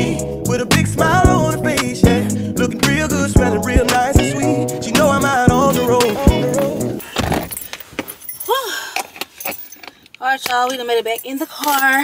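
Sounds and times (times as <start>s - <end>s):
rising and falling tone: 0.0s - 7.0s
car keys jangling: 4.9s - 12.0s
light metallic clinks: 7.5s - 12.0s.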